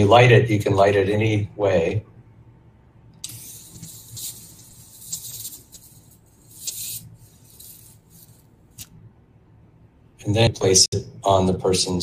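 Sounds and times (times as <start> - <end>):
electric arc lighter crackling: 3.2 - 8.9.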